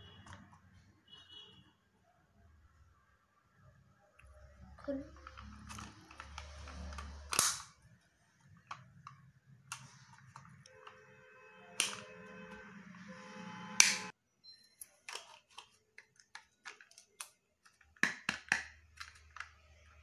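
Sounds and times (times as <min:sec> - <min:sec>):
plastic capsule snapping open: 0:05.2 - 0:07.8, 0:11.8 - 0:12.0, 0:15.1 - 0:19.7.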